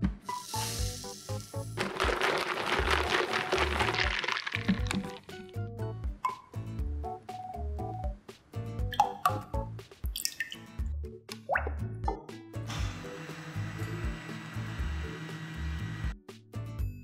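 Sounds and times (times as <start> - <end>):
background music with beat: 4.8 - 12.7
stick blender running: 12.7 - 16.2.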